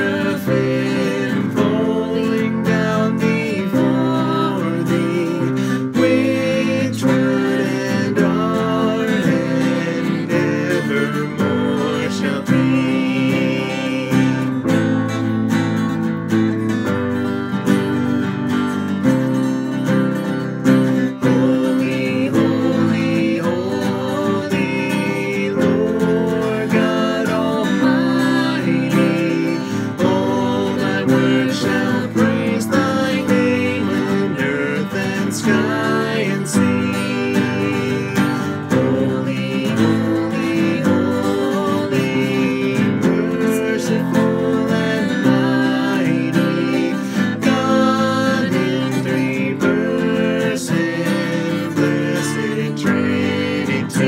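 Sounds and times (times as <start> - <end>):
woman singing: 0.0 - 14.6, 21.0 - 54.0
man singing: 0.0 - 15.3, 20.2 - 54.0
acoustic guitar strumming: 0.0 - 54.0.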